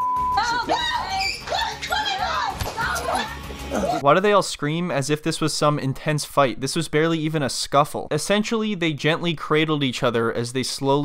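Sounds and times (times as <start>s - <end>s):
people screaming and shrieking: 0.4s - 4.0s.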